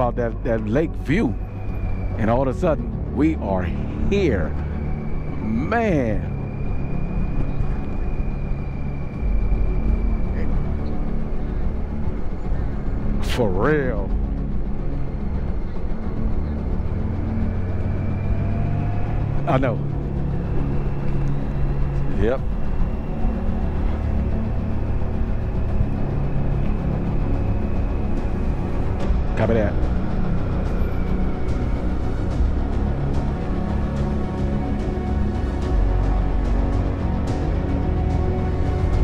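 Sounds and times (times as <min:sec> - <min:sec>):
music playing: 0:00.0 - 0:39.0
wind rumble: 0:00.0 - 0:39.0
person speaking: 0:19.5 - 0:19.8, 0:22.2 - 0:22.4, 0:29.4 - 0:29.8.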